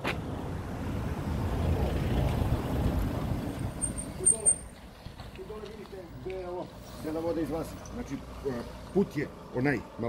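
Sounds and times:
vehicle engine and tyre rumble: 0:00.0 - 0:10.0.

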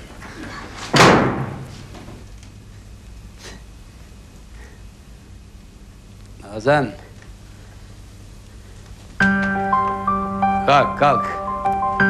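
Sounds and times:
door flung open with bang: 0:00.8 - 0:01.9.

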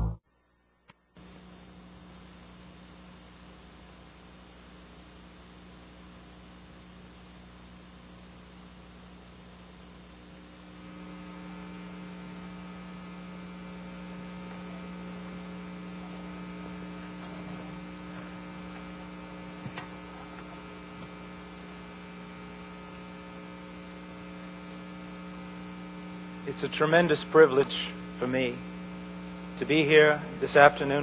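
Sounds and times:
electrical mains hum: 0:00.0 - 0:31.0.

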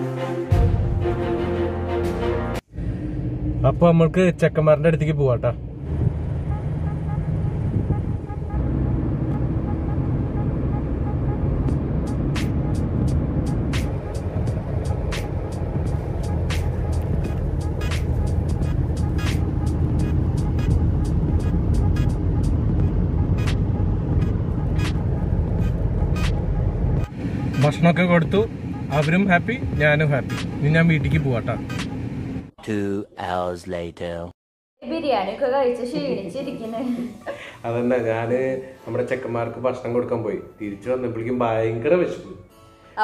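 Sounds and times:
car engine and road noise: 0:00.8 - 0:32.6.

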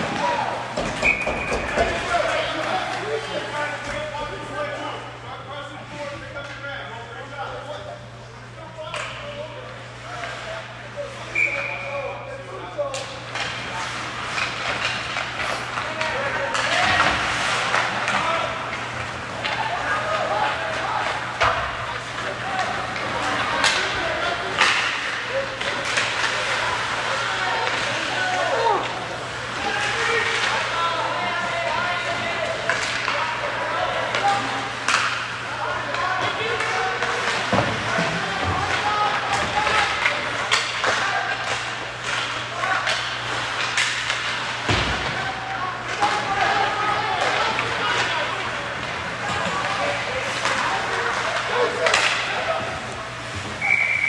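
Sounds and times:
sticks clacking on puck: 0:12.9 - 0:26.6, 0:32.6 - 0:45.2, 0:45.9 - 0:52.5.

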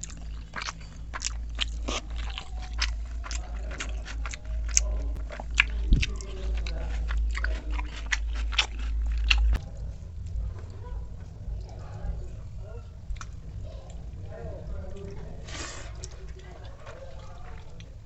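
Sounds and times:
person chewing and crunching food: 0:00.0 - 0:18.0
steady low hum: 0:00.0 - 0:18.0.

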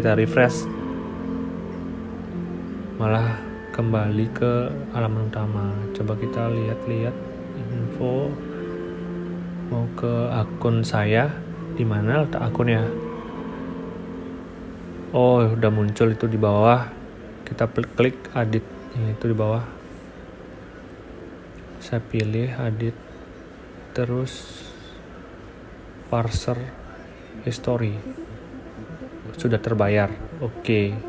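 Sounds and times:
faint sustained tones: 0:00.0 - 0:31.0
quiet background music: 0:00.0 - 0:31.0
faint hiss: 0:13.8 - 0:28.2
steady low hum: 0:24.4 - 0:31.0.

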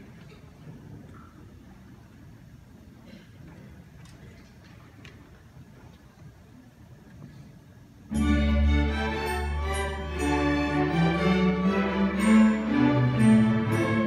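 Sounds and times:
ensemble playing loud held chord: 0:08.1 - 0:14.0.

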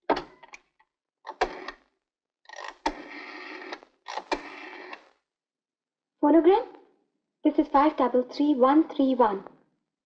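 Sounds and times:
rotary dial whirring back: 0:01.3 - 0:01.9, 0:02.5 - 0:05.2.

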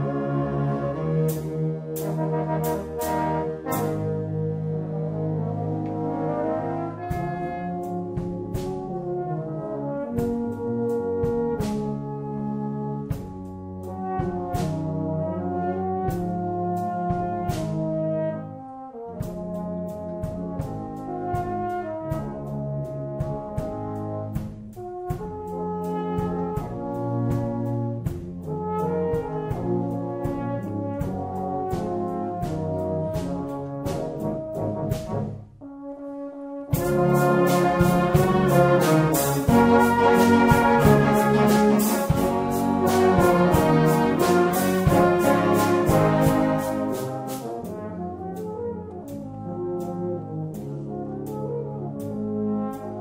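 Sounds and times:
tenor horn solo melody: 0:00.0 - 0:13.2, 0:13.9 - 0:53.0
brass band playing slow ballad: 0:00.0 - 0:53.0.

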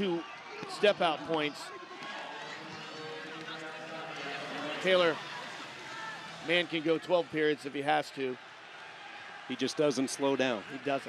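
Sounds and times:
murmur of arena crowd: 0:00.0 - 0:11.0.

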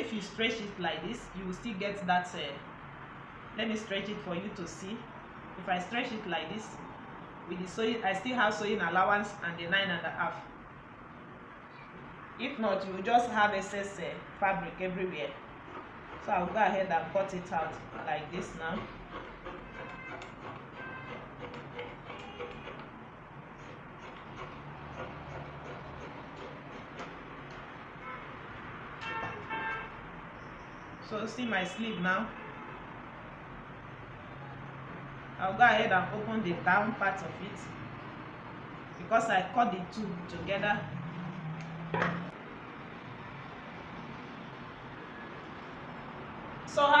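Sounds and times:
scissors snipping fabric: 0:17.4 - 0:22.9, 0:23.6 - 0:27.2.

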